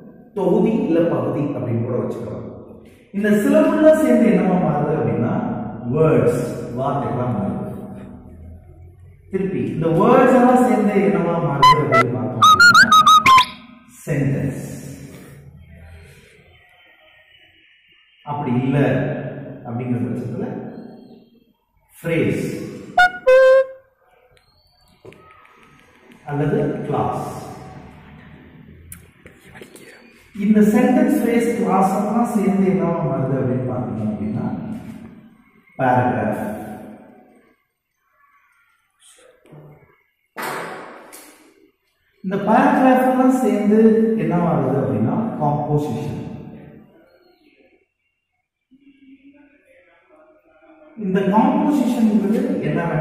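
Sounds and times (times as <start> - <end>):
man's voice: 11.6 - 12.6
chalk squeaking on blackboard: 11.6 - 13.6.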